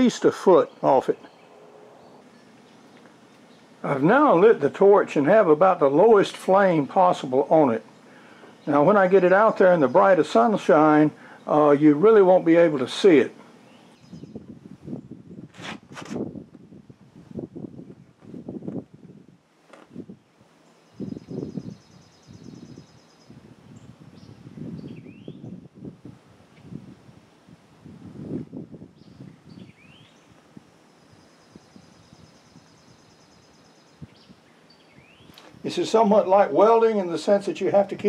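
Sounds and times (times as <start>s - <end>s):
birds trilling and chirping: 0.0s - 15.0s, 20.5s - 25.6s, 28.9s - 38.0s.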